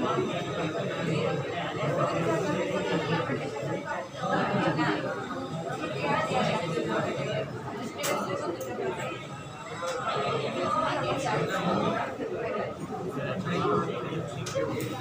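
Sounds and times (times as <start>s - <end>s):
indistinct chatter of voices: 0.0s - 15.0s.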